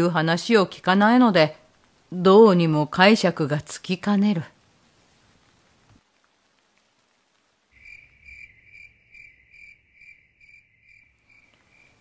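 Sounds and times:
cricket chirping: 7.8s - 12.0s.

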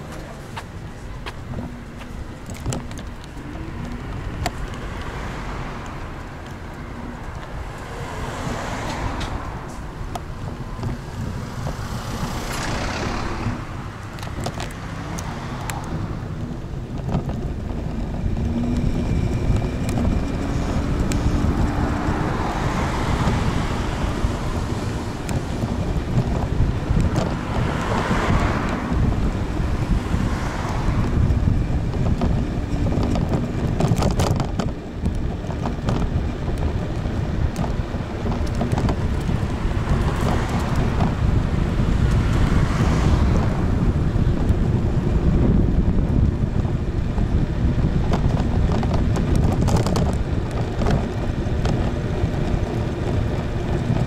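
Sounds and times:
cars passing close by: 0.0s - 54.0s
wind buffeting microphone: 0.0s - 54.0s.

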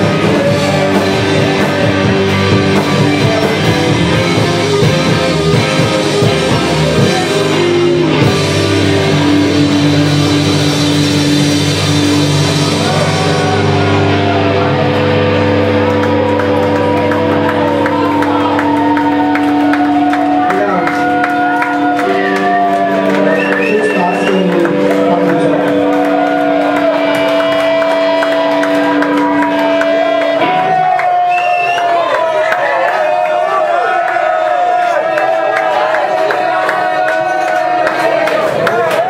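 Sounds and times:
live rock band playing: 0.0s - 33.5s.

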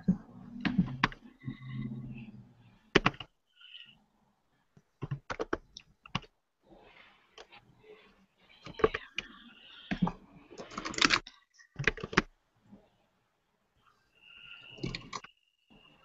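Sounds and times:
keyboard typing clicks: 2.9s - 3.3s, 9.9s - 12.3s, 14.8s - 15.3s.

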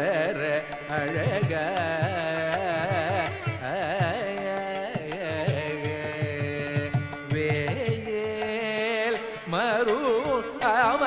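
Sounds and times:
man singing with ornaments: 0.0s - 11.0s.

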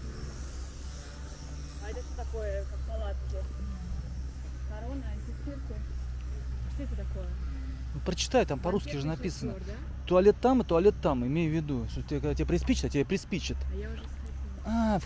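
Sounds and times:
people's voices: 1.8s - 15.0s.

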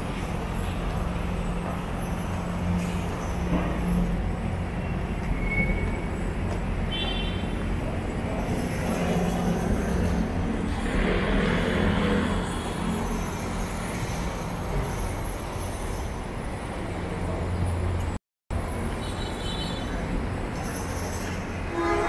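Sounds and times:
city traffic rumble: 0.0s - 22.0s.

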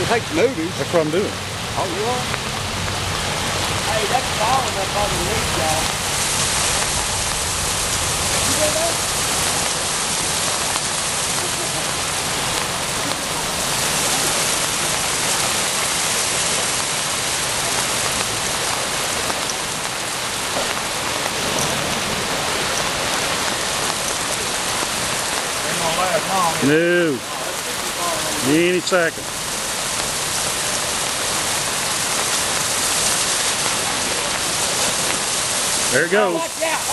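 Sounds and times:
floodwater rushing: 0.0s - 36.9s.

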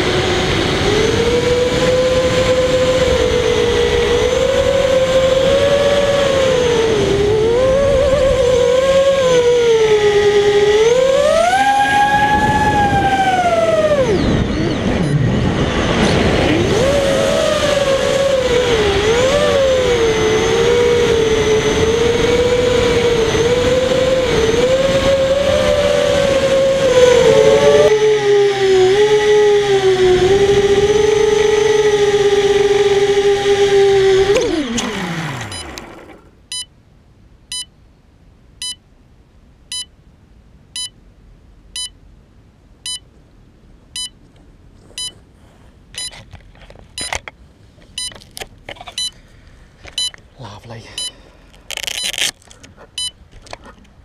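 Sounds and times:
drone motors whining: 22.4s - 36.3s
short electronic beep: 26.9s - 28.0s, 40.8s - 41.0s, 46.0s - 46.2s, 48.0s - 48.2s, 51.0s - 51.2s.

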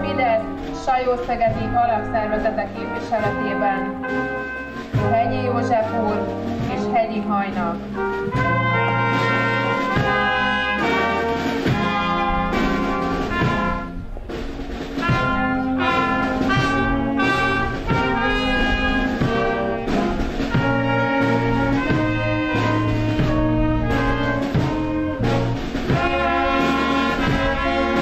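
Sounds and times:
brass ensemble chords: 0.0s - 28.0s.

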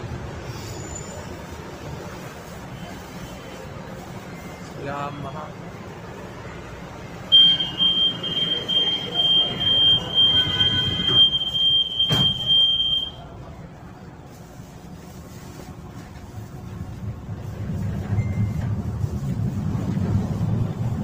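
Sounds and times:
high-pitched warning beeping: 7.3s - 13.2s.

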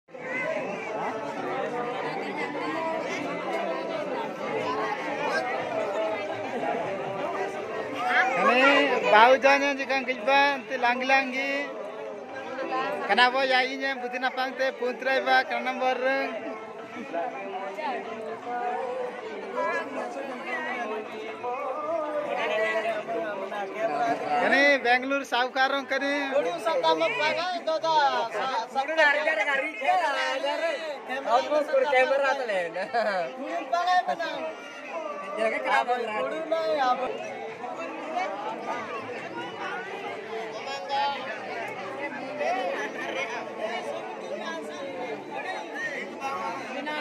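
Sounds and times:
overlapping chatter of voices: 0.0s - 47.0s.

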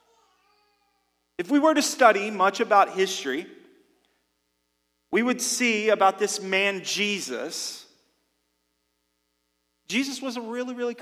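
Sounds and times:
faint steady hum: 0.0s - 11.0s
man speaking: 1.4s - 3.6s, 5.2s - 7.9s, 9.9s - 11.0s.

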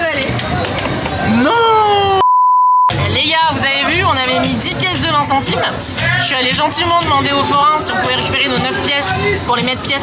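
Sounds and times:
censor bleep tone: 2.2s - 2.9s
background music: 2.9s - 10.0s.

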